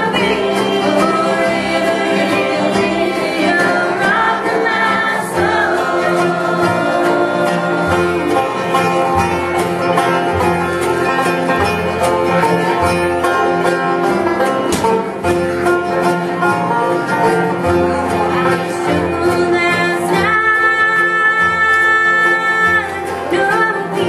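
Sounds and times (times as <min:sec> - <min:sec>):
acoustic guitar: 0:00.0 - 0:24.0
banjo rolls: 0:00.0 - 0:24.0
mandolins: 0:00.0 - 0:24.0
person singing: 0:17.5 - 0:24.0.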